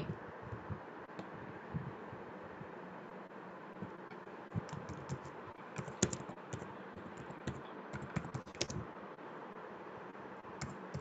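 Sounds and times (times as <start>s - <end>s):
steady background hiss: 0.0s - 11.0s
keyboard keystroke clicks: 4.6s - 8.8s, 10.6s - 11.0s.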